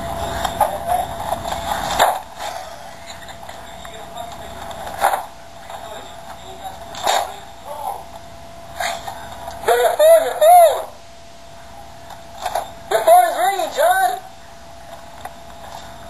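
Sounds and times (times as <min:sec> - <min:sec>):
person calling: 0:08.8 - 0:11.0, 0:12.9 - 0:14.3.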